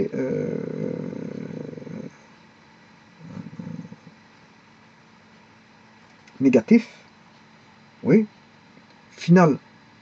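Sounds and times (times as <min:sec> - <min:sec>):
man murmuring: 0:00.0 - 0:02.2, 0:03.2 - 0:04.2
faint steady hum: 0:00.0 - 0:10.0.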